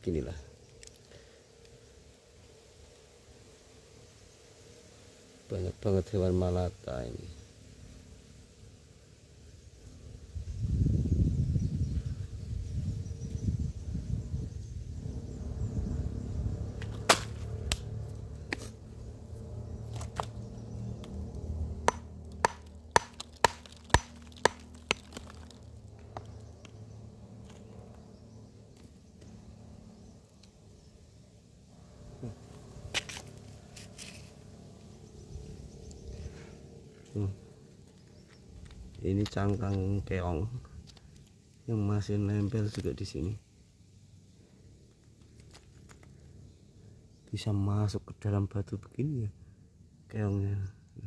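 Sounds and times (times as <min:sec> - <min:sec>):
hammer striking stone: 0:21.8 - 0:25.5.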